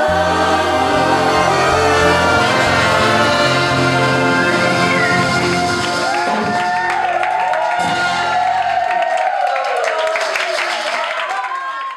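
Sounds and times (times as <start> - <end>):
bass: 0.0 - 7.1
crowd cheering: 0.0 - 11.9.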